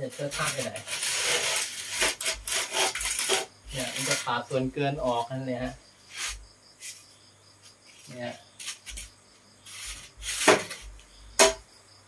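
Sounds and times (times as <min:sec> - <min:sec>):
person speaking: 0:00.0 - 0:00.9, 0:03.7 - 0:05.8, 0:08.0 - 0:08.4
straightedge scraping cement render: 0:00.0 - 0:05.4, 0:06.0 - 0:07.1, 0:07.9 - 0:11.5.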